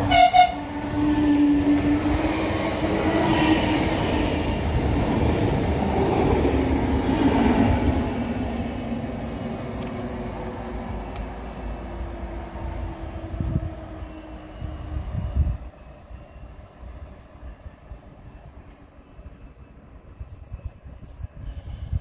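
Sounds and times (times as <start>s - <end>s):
train horn blast: 0.0s - 0.8s
train wheels rumbling on rails: 0.0s - 22.0s.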